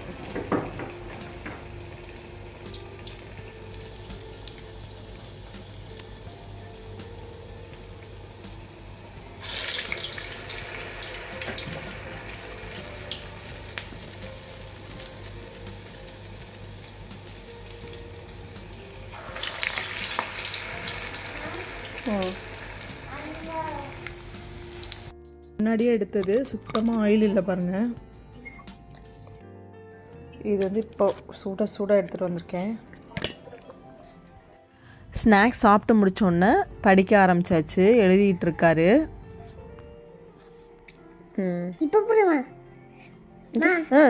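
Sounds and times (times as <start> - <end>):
deep-frying sizzle with pops: 0.0 - 25.1.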